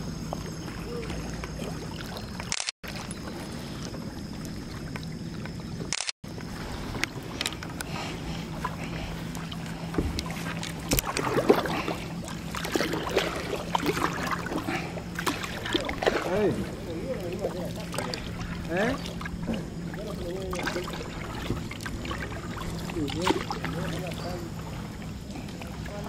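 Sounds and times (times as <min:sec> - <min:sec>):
kayak paddle dips and drips: 0:00.0 - 0:26.0
steady low hum: 0:00.0 - 0:26.0
paddle knocking against boat: 0:06.5 - 0:24.8.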